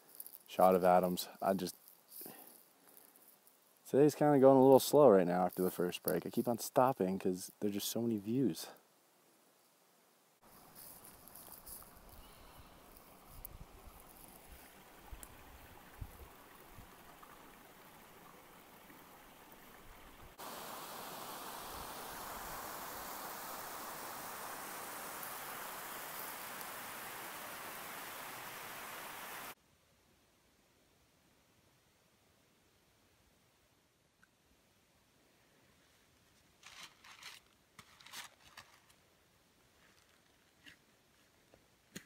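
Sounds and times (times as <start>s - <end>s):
running stream rushing: 10.4s - 29.6s.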